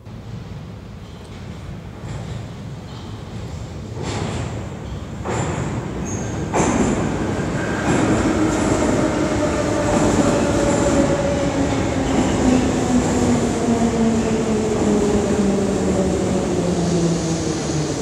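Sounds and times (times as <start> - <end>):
metro train rumble: 0.0 - 18.0.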